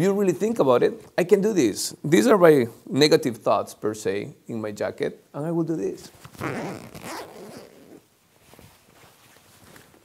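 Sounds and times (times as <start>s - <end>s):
fabric rustling: 6.0s - 10.0s
zipper pulled down: 6.3s - 8.1s.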